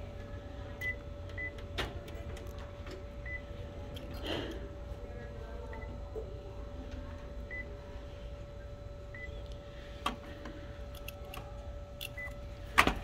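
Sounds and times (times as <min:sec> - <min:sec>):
copier steady hum: 0:00.0 - 0:13.0.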